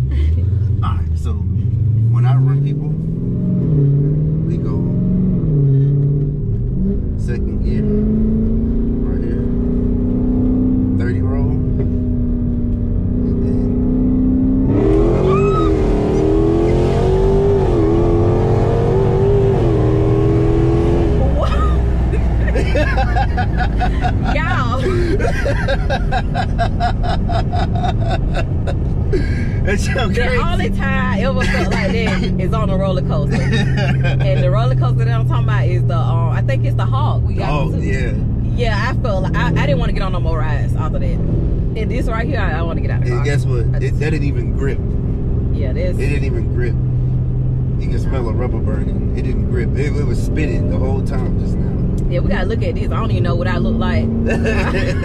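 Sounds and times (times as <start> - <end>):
car engine accelerating: 0.0 - 55.0
wind and road noise: 0.0 - 55.0.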